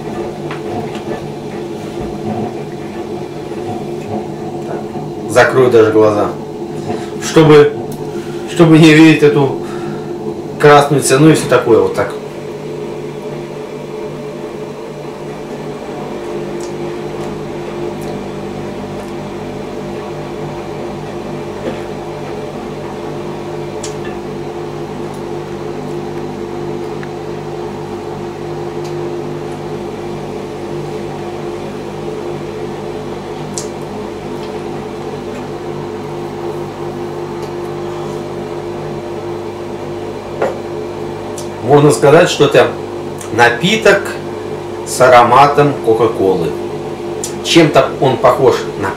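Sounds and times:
appliance mechanical hum: 0:00.0 - 0:48.9.

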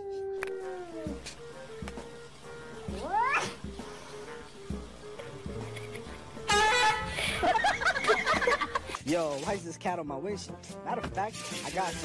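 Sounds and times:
background music: 0:00.0 - 0:12.0
cat meowing: 0:02.9 - 0:03.6.

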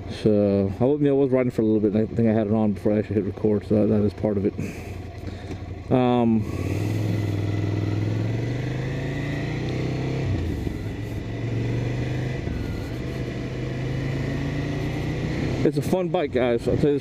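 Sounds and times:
motorcycle engine at road speed: 0:00.0 - 0:17.0.

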